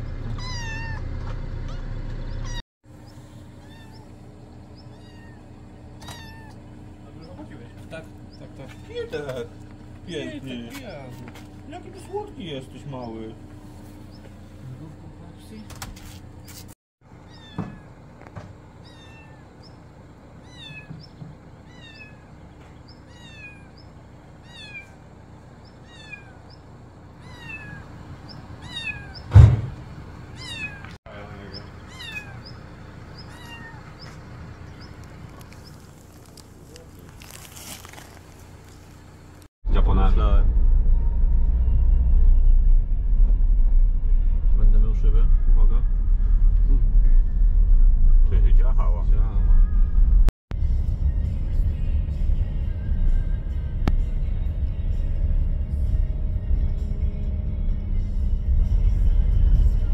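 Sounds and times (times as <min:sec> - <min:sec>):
kitten meowing: 0:00.4 - 0:01.0, 0:03.6 - 0:04.1, 0:04.8 - 0:06.6, 0:17.2 - 0:17.9, 0:18.8 - 0:19.5, 0:20.4 - 0:21.0, 0:21.6 - 0:22.3, 0:23.0 - 0:23.8, 0:24.4 - 0:25.0, 0:25.8 - 0:26.4, 0:27.2 - 0:27.8, 0:28.6 - 0:29.3, 0:30.4 - 0:31.0, 0:31.9 - 0:32.6, 0:33.2 - 0:34.0
loud thump: 0:29.3 - 0:29.9
car cabin rumble while driving: 0:38.2 - 0:59.9.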